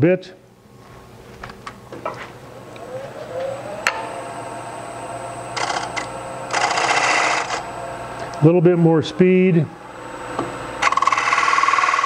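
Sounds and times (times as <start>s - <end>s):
wood lathe whine: 2.5s - 12.0s
gouge cutting wood: 5.6s - 7.6s, 10.8s - 12.0s.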